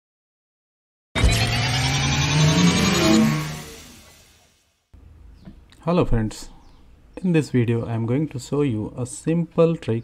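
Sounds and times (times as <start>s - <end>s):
low synth notes stepping upward: 1.2s - 4.4s
rising synthesized sweep: 1.2s - 4.5s.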